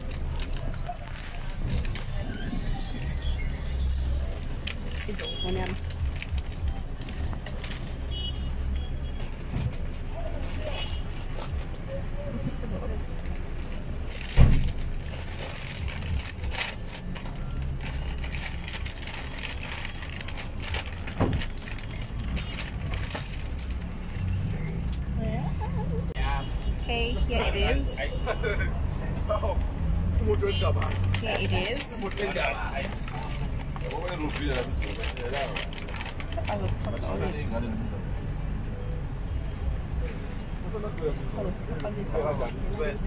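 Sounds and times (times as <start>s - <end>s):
car interior rumble: 0.0s - 27.8s.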